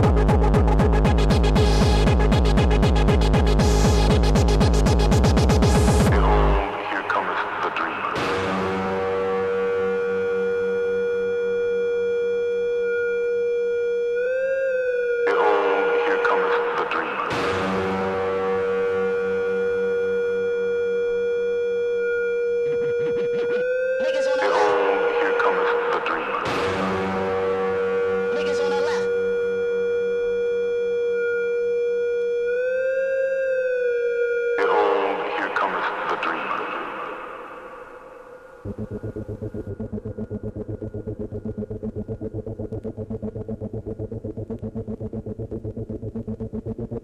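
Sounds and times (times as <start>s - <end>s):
electronic dance music: 0.0s - 10.0s, 15.3s - 19.7s, 22.4s - 29.4s, 38.6s - 47.0s
bending synth tone: 9.1s - 34.6s, 37.3s - 47.0s
held synth note: 37.3s - 47.0s.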